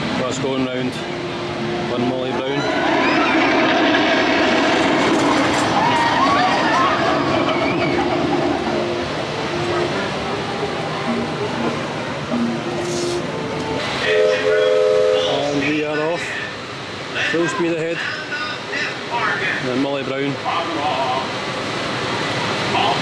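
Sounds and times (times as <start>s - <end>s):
hissing churning water wash: 0.0s - 23.0s
steam whistle chord: 8.8s - 15.6s
voices: 22.6s - 23.0s.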